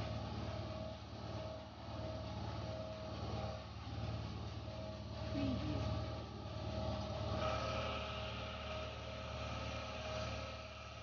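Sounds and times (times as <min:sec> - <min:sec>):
pump engine humming: 0:00.0 - 0:11.0.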